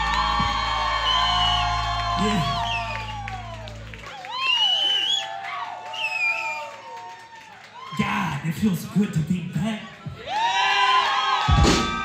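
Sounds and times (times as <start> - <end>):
audience cheering and whooping: 0.0 - 8.4, 10.1 - 12.0
high whistle-like cry: 4.3 - 6.6.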